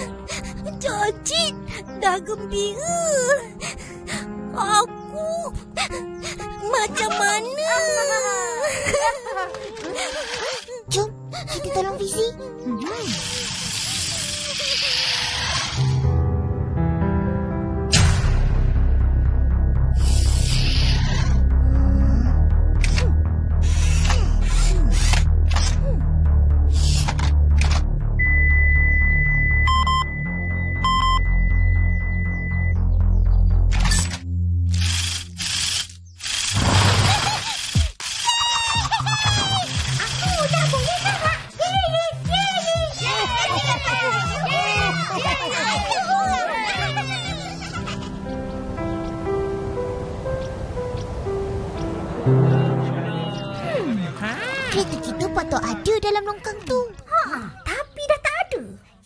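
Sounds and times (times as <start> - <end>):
dramatic music with low notes: 0.0 - 10.0, 15.4 - 36.4, 38.8 - 57.1
high-pitched cartoon voices cheering: 38.2 - 47.6.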